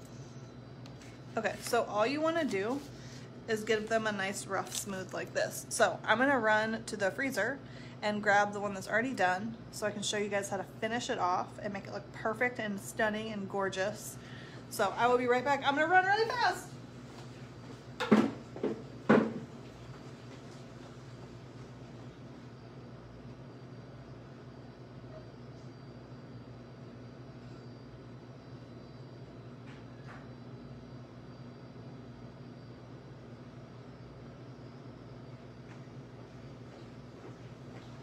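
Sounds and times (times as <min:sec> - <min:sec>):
low hum of room tone: 0:00.0 - 0:38.0.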